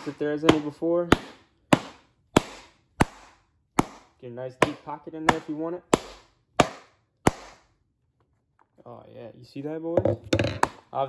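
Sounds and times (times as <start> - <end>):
mallet hitting leather glove: 0.0 - 7.7.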